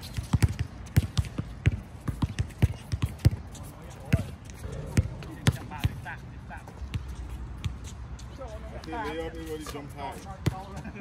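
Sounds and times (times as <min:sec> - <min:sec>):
basketball bouncing on court: 0:00.0 - 0:07.8.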